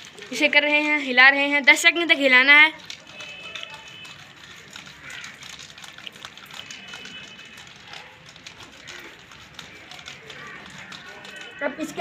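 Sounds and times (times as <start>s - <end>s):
water sloshing in plastic bottle: 0.0s - 12.0s.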